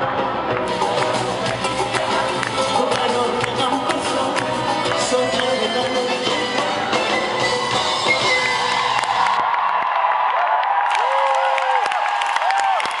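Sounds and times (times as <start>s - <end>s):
amplified live concert music: 0.0s - 9.5s
audience cheering and whooping: 7.9s - 13.0s.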